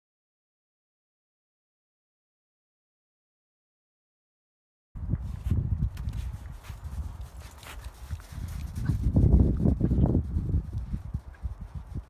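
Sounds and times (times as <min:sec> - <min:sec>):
footsteps on snow: 0:05.1 - 0:12.0.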